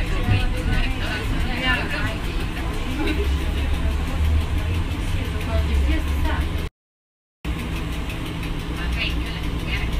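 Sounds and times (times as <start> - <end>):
trolleybus low hum: 0.0 - 6.7, 7.5 - 9.9.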